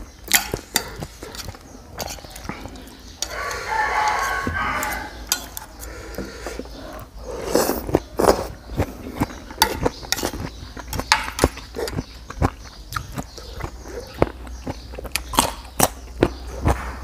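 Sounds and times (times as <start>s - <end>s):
eating sounds: 0.0s - 17.0s
cutlery scraping on plate: 0.3s - 6.6s, 9.3s - 12.0s
rooster crowing: 3.2s - 5.3s.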